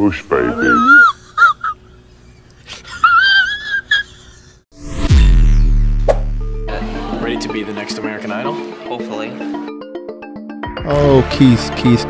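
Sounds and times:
man crying: 0:00.4 - 0:01.9.

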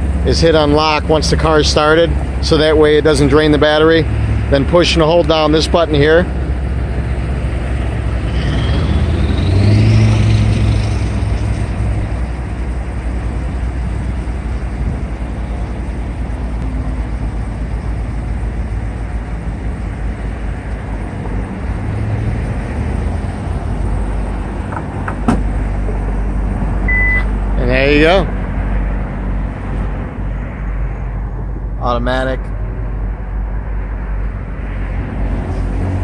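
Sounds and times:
car engine idling: 0:00.0 - 0:08.3, 0:11.0 - 0:30.3
short beep: 0:26.8 - 0:27.3.

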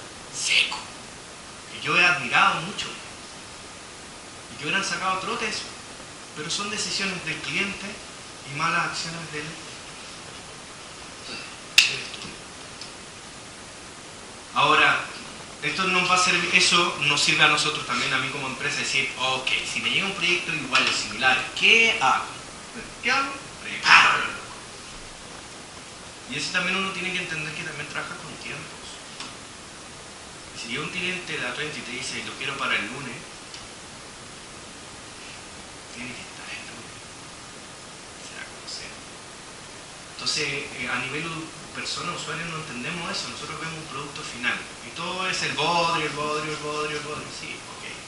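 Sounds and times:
steady room hiss: 0:00.0 - 0:48.0.

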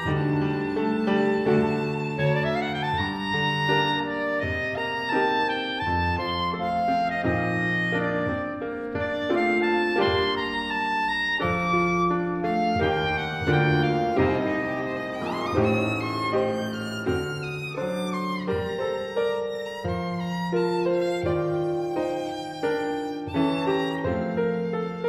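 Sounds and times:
clarinet: 0:00.0 - 0:25.0
grand piano chords: 0:00.0 - 0:25.0
violin: 0:00.0 - 0:25.0.

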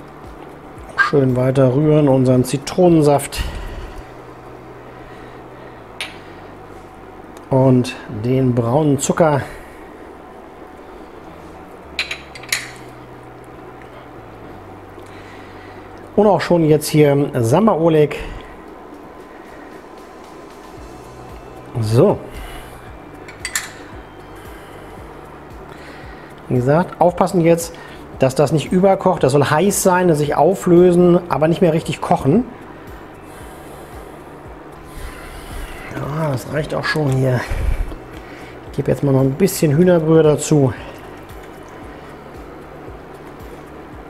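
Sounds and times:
faint low hum: 0:00.0 - 0:44.0.

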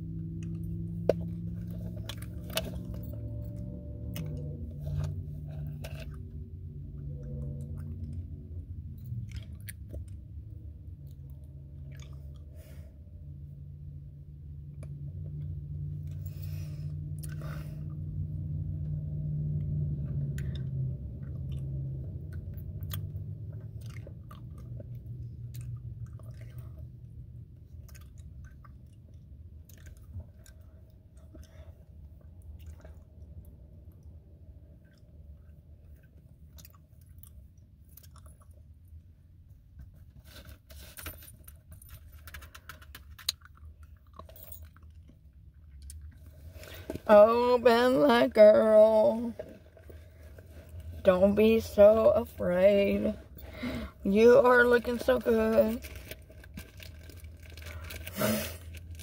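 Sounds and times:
car cabin drone: 0:00.0 - 0:36.3, 0:46.0 - 0:59.0.

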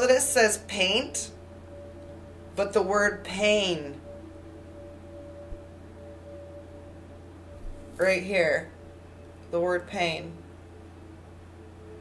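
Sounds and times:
drone music with ringing tone: 0:00.0 - 0:12.0
low hum: 0:00.0 - 0:12.0.

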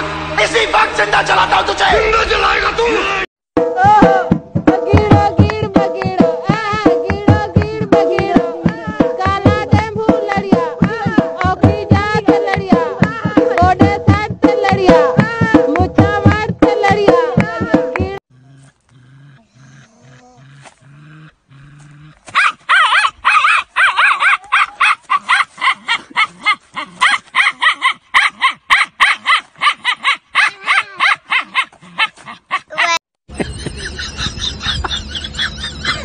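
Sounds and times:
dog yelping: 0:22.2 - 0:33.0.

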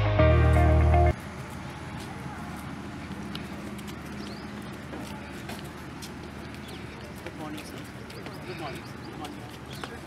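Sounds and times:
outdoor background noise: 0:00.0 - 0:10.0
marching boots on pavement: 0:00.1 - 0:10.0.

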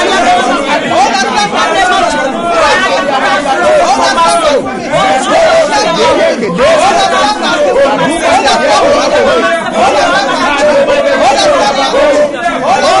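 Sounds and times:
man praying aloud: 0:00.0 - 0:13.0.

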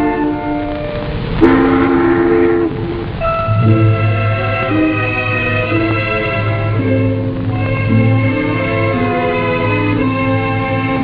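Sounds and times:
background music: 0:00.0 - 0:11.0
ship's whistle blast: 0:01.4 - 0:06.7.

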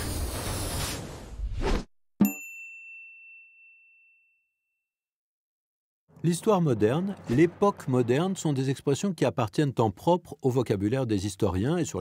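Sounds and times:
bright bell ding: 0:02.2 - 0:04.8.

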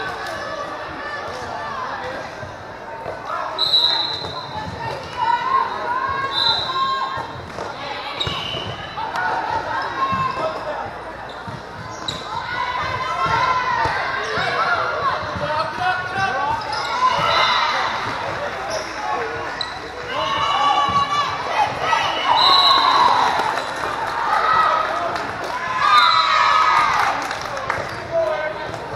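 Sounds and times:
crowd of voices: 0:00.0 - 0:28.9.

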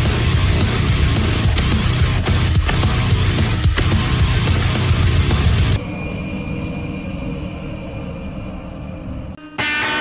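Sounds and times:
heavy metal guitar riff: 0:00.0 - 0:05.8, 0:09.4 - 0:10.0
low rumbling drone: 0:02.9 - 0:09.4.

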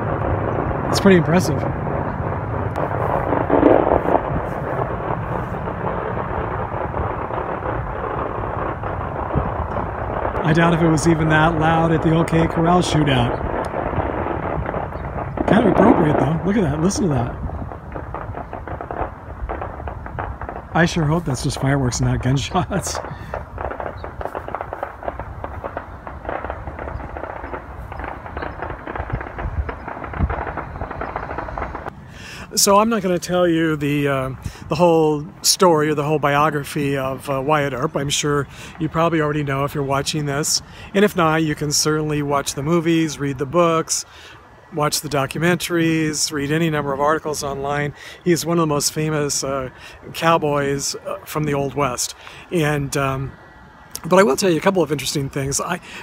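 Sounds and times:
fireworks booming: 0:00.0 - 0:56.0.

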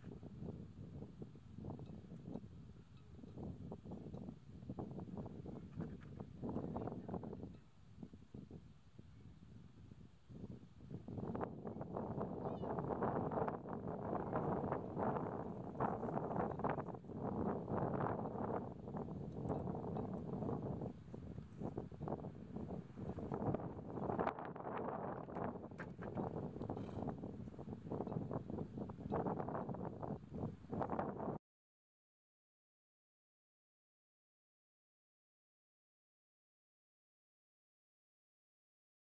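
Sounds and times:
wind buffeting microphone: 0:00.0 - 0:31.4.

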